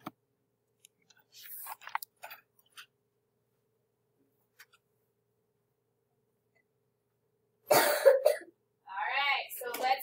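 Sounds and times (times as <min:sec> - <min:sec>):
person coughing: 0:07.7 - 0:08.5.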